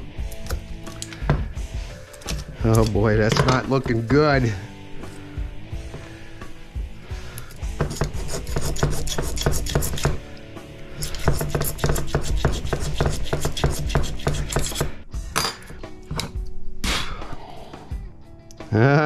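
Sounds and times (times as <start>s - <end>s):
scraping wire winding: 11.0s - 15.0s.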